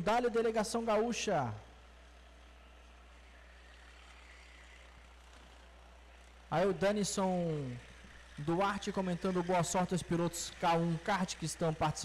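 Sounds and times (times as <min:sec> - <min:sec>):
distant kart engines: 0:00.0 - 0:12.0.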